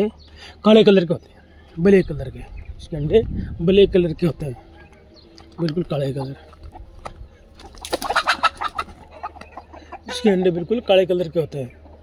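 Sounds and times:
chicken clucking: 4.2s - 12.0s.

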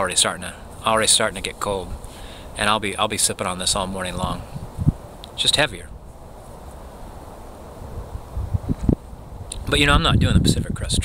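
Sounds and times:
wind rumble on microphone: 3.6s - 5.1s, 7.8s - 11.0s.

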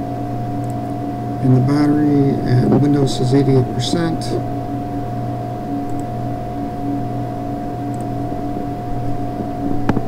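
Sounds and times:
low drone: 0.0s - 10.0s
mid-pitched whine: 0.0s - 10.0s.

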